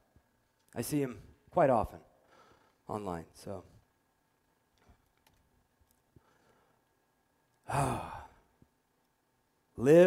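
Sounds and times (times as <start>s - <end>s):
man sighing: 7.6s - 8.5s.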